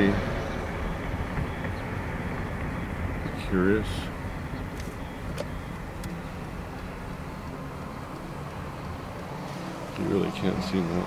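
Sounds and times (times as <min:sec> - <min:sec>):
car driving on city street: 0:00.0 - 0:11.0.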